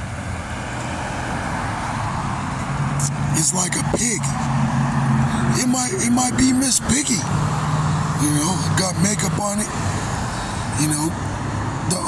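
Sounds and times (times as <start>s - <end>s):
low rumbling vehicle noise: 0.0s - 12.0s.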